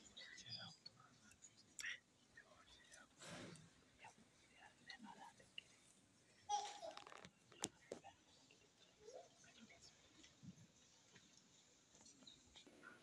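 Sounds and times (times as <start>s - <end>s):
people whispering: 0.0s - 6.4s, 7.5s - 11.4s.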